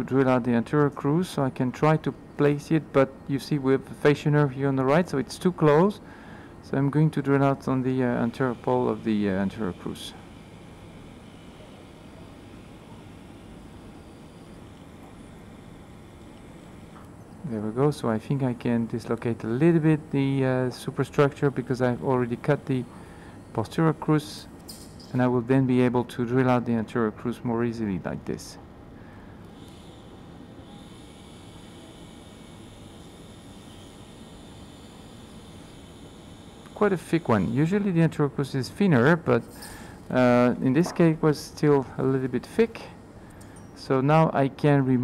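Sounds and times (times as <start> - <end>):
surgical equipment hiss and hum: 0.0 - 45.0
micro drill whine: 7.4 - 25.2, 29.4 - 38.2.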